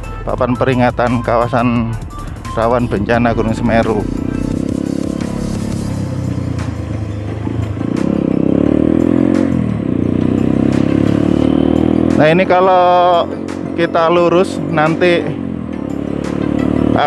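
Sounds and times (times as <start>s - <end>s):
background music: 0.0s - 17.0s
motorcycle engine running: 0.0s - 17.0s.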